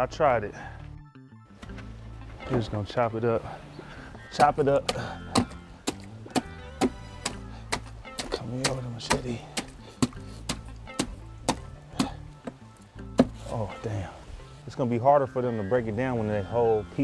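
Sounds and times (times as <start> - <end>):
background music: 0.0 - 17.0
spade chopping kitchen scraps: 4.4 - 12.2.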